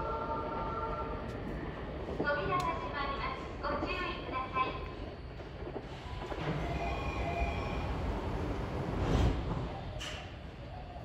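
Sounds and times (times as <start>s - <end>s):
electric train rumble: 0.0s - 11.0s.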